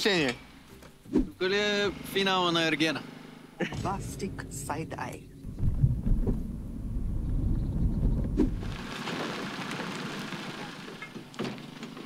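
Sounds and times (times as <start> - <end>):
car cabin road and engine rumble: 0.0 - 8.8.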